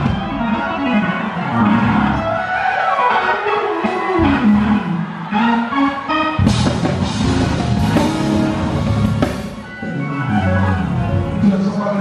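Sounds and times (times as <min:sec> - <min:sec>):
live gospel band music: 0:00.0 - 0:12.0.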